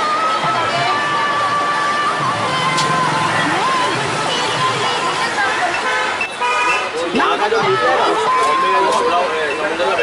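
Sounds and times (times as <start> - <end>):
market crowd chatter: 0.0 - 10.0.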